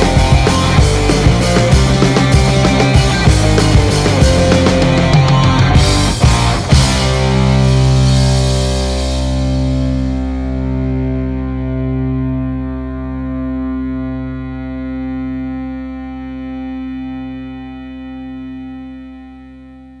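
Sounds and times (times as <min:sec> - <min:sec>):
distorted electric guitar chord: 0:00.0 - 0:20.0.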